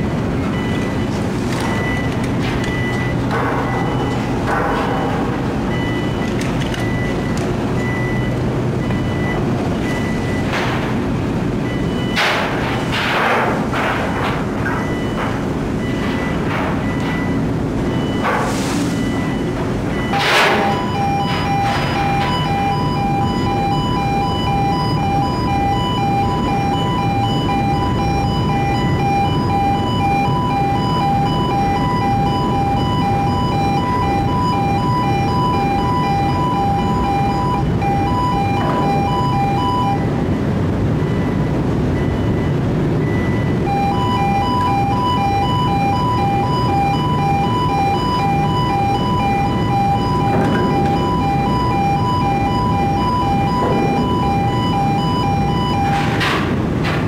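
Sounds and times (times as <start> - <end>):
low rumble of ship machinery: 0.0 - 57.0
two-tone warning alarm beeping: 0.0 - 57.0.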